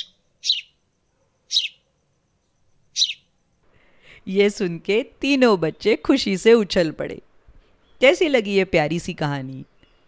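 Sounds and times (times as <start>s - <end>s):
small bird chirping: 0.0s - 3.6s.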